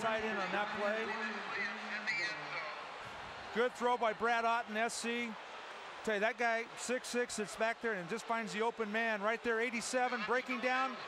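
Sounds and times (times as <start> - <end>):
football broadcast background noise: 0.0 - 11.0.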